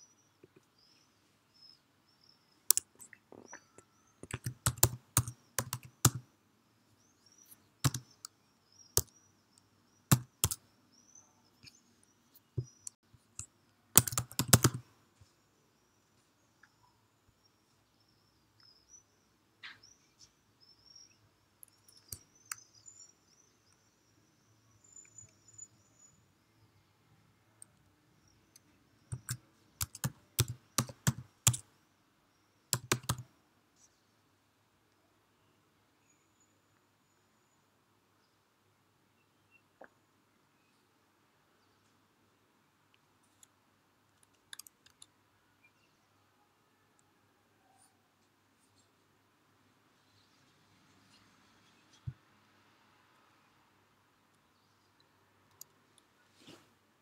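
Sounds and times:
computer keyboard typing: 4.2s - 6.2s, 7.8s - 8.3s, 10.1s - 10.6s, 12.8s - 14.9s, 28.5s - 31.7s, 32.7s - 33.3s, 44.2s - 45.1s.

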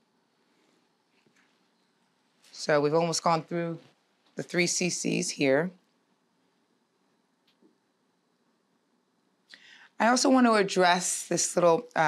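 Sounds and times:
soft intake of breath: 9.5s - 10.0s.

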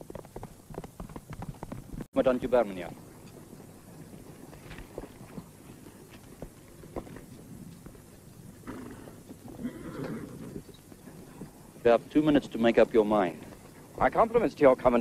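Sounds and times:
horse hooves knocking: 0.0s - 11.6s
breathy horse sound: 3.0s - 11.9s, 13.3s - 14.0s.

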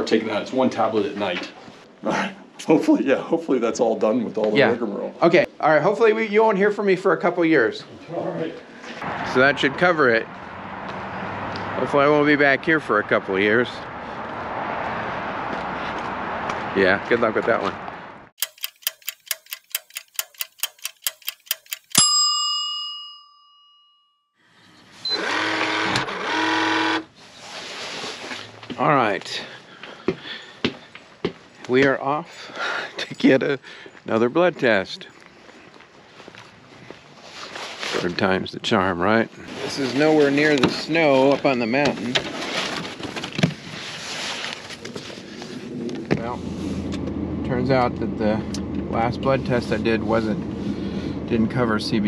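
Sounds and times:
clock-like ticks: 18.4s - 22.1s
bell ding: 21.9s - 24.3s
brush scraping snow off windshield: 27.2s - 28.4s, 39.4s - 41.3s, 43.6s - 46.8s.

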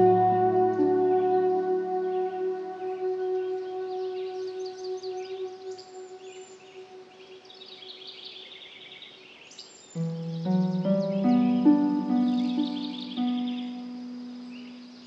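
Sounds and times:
ambient music chord: 0.0s - 8.0s, 10.0s - 15.0s
birds chirping and trilling: 0.0s - 15.0s.

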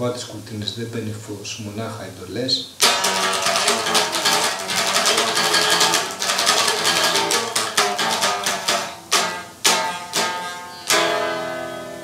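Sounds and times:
electric guitar playing: 2.8s - 12.0s.

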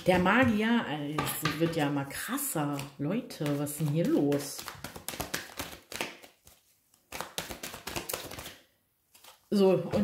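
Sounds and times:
cards being shuffled: 2.5s - 10.0s.

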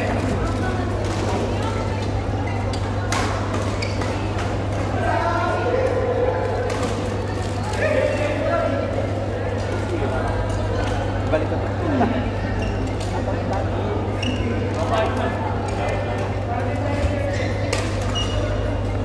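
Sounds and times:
indistinct chatter: 0.0s - 19.0s.

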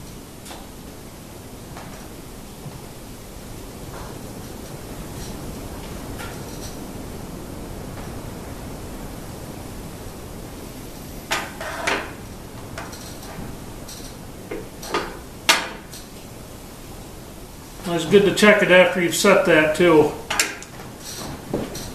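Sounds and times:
steady hiss: 0.0s - 21.9s.

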